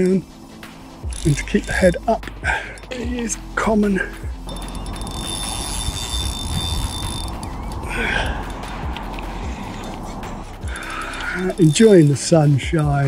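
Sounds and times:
fishing reel drag ticking: 1.0s - 13.0s.

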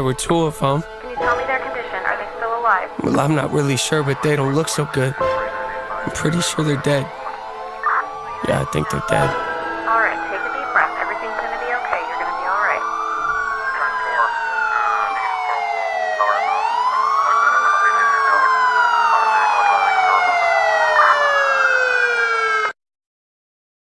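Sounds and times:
emergency sirens wailing: 0.0s - 22.8s.

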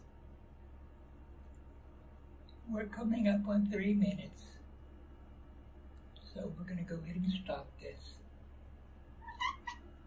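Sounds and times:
cat squeaking: 9.2s - 10.0s.

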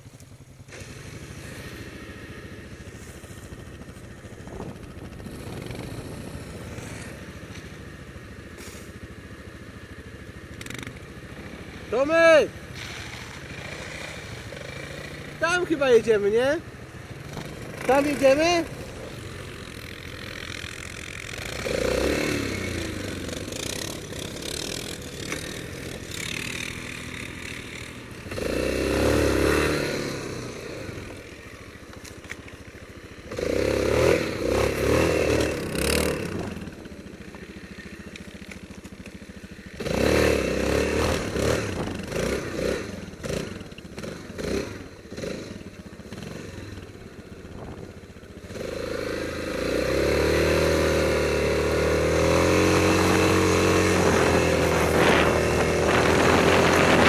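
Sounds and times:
quad bike engine revving: 0.0s - 57.0s.

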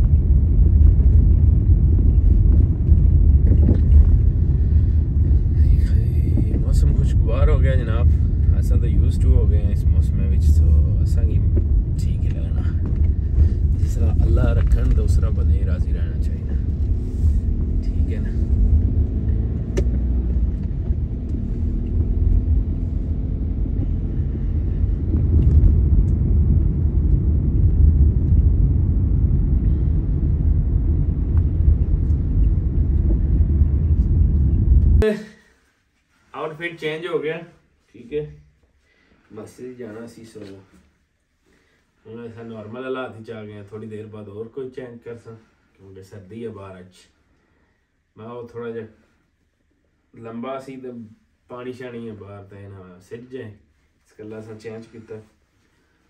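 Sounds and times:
car road rumble: 0.0s - 35.0s
indistinct voices: 5.4s - 19.2s.

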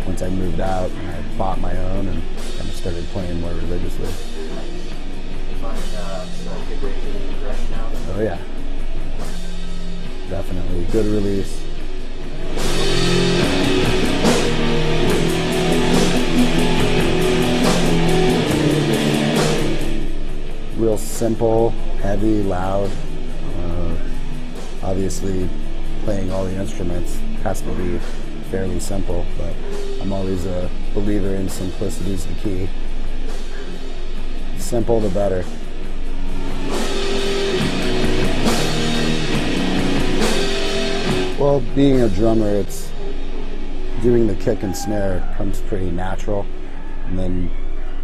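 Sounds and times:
distorted electric guitar chords: 0.0s - 45.0s
drums: 0.0s - 48.0s.

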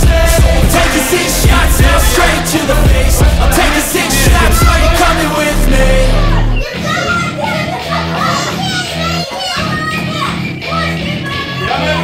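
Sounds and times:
pop music: 0.0s - 12.0s
children's voices: 1.8s - 12.0s.

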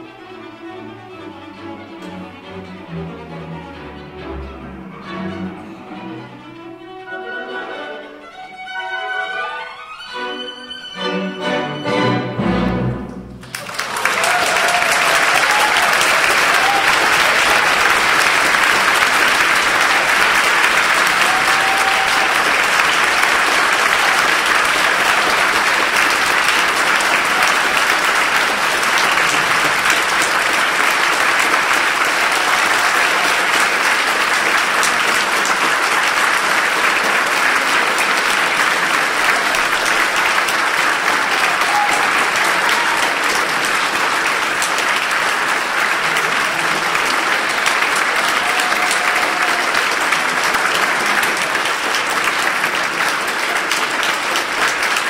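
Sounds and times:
orchestral music: 0.0s - 14.0s, 16.6s - 48.4s
audience applauding: 13.3s - 55.0s.

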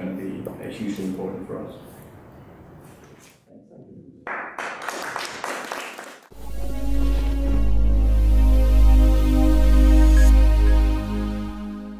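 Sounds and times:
audience applauding: 4.3s - 6.4s.

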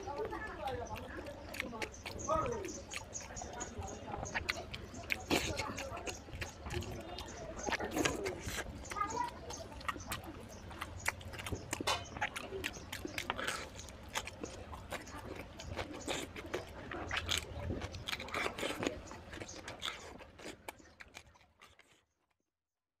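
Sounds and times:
close chewing and mouth sounds: 0.0s - 22.4s.

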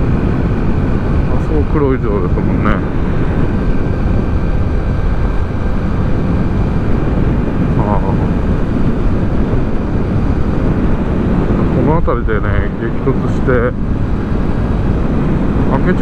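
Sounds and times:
motorcycle engine cruising: 0.0s - 16.0s
wind on microphone: 0.0s - 16.0s.

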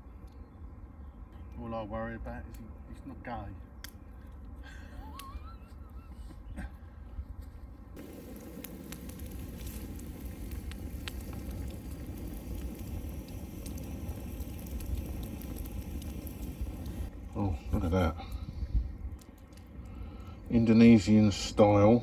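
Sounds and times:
campfire crackling: 0.1s - 5.7s, 8.0s - 22.0s.

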